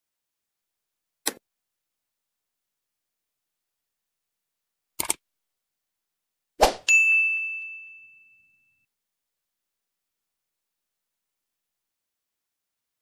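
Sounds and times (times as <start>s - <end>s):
mouse clicks: 1.2s - 1.4s, 5.0s - 5.2s
notification bell ding: 6.9s - 8.8s.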